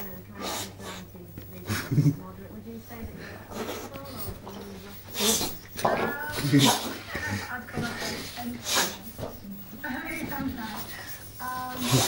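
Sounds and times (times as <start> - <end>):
dog breathing noisily: 0.2 - 1.2, 2.9 - 12.0.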